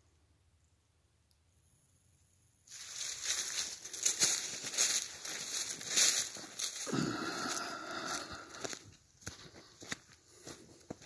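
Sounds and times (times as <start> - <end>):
footsteps crunching dry leaves: 2.7 - 11.0.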